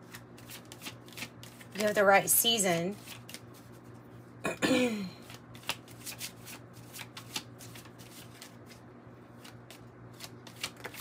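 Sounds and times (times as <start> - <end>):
cards being shuffled: 0.0 - 2.1, 2.9 - 4.0, 5.2 - 11.0.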